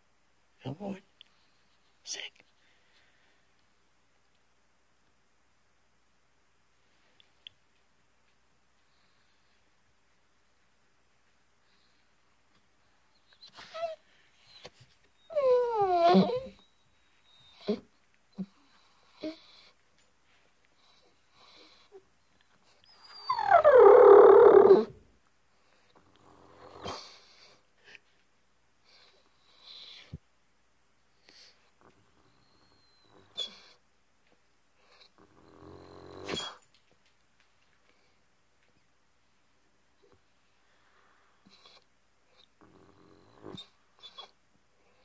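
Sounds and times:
dog howling: 0:15.3 - 0:16.5, 0:23.1 - 0:24.9
dog snorting: 0:35.2 - 0:36.6.

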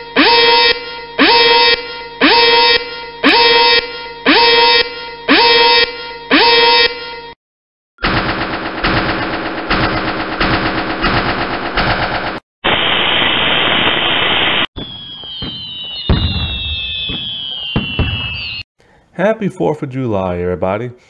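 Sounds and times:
rapid machine-gun-like rattling: 0:08.0 - 0:12.4
fireworks whistles and booms: 0:12.6 - 0:18.7.

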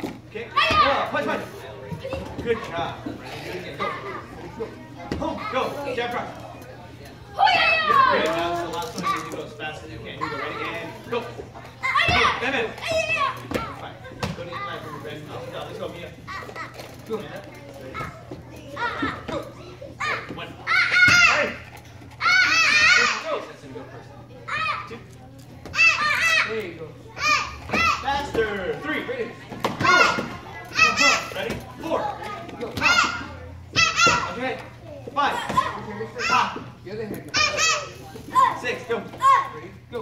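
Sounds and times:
child shouting: 0:22.2 - 0:23.3, 0:32.8 - 0:34.4.

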